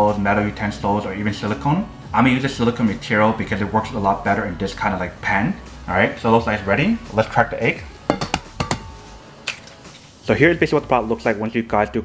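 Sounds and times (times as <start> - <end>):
egg tapped on pan rim: 8.1 - 9.0.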